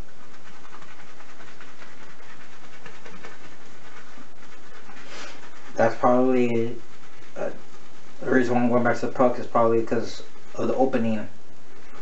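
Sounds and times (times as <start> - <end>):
shaving brush swishing on soap: 0.0 - 12.0.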